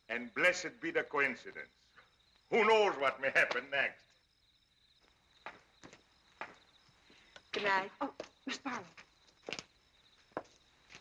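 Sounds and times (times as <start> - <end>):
footsteps on stone paving: 5.0 - 11.0.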